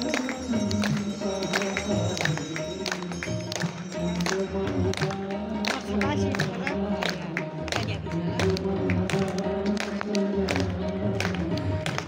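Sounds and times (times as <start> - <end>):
devotional music held notes: 0.0 - 12.0
sharp percussive beats: 0.0 - 12.0.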